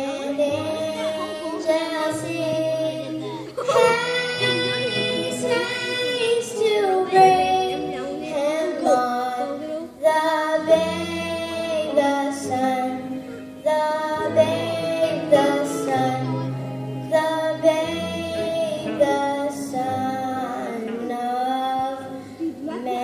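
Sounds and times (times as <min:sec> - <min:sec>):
girl singing into a microphone: 0:00.0 - 0:23.0.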